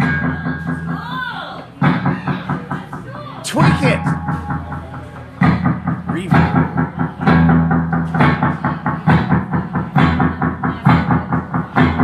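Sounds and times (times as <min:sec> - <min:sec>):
drums fast steady beat: 0:00.0 - 0:12.0.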